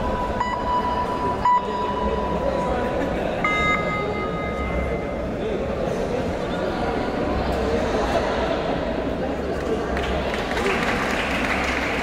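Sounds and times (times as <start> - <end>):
steady pitched tone: 0.0 - 5.8
murmur of voices in a hall: 0.0 - 12.0
higher steady tone: 3.4 - 5.4.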